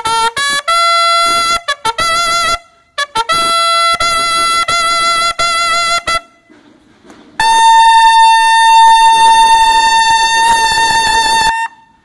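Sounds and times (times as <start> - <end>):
clipped bugle note: 0.0 - 12.0
bugles holding a long note: 7.4 - 12.0.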